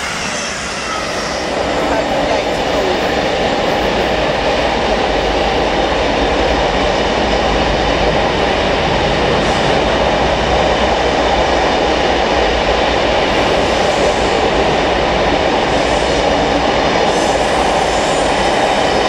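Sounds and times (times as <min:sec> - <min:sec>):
electric train equipment running: 0:00.0 - 0:19.0.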